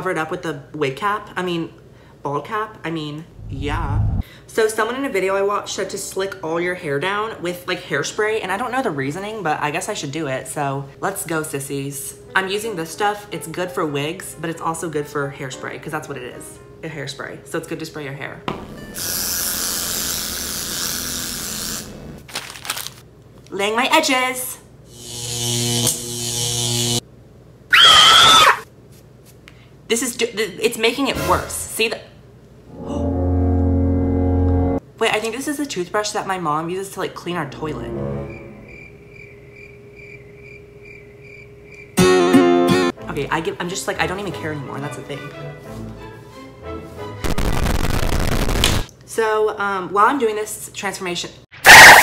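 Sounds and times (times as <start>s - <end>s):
harsh noise burst: 3.3s - 4.2s, 47.2s - 48.9s
rising electronic tone: 3.3s - 4.2s, 32.7s - 34.8s
buzzing tone with hiss: 18.6s - 22.2s, 24.9s - 27.0s.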